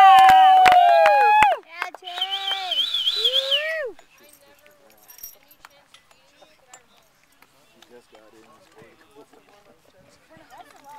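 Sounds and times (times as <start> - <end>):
spectator cheering yells: 0.0 - 1.6.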